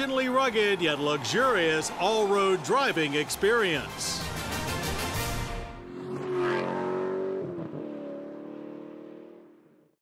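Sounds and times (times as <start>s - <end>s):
car engine passing: 5.2s - 9.8s.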